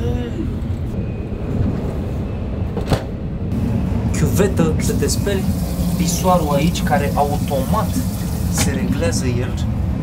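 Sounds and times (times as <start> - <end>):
train running low rumble: 0.0 - 10.0.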